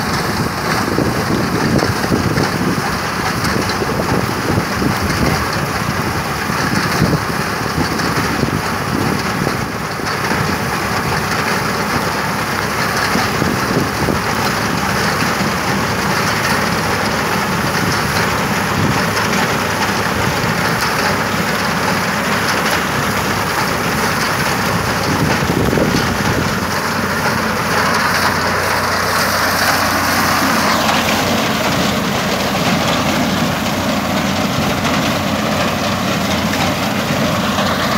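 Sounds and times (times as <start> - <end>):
straw chopper rushing noise: 0.0 - 37.9
tractor engine low hum: 0.0 - 37.9.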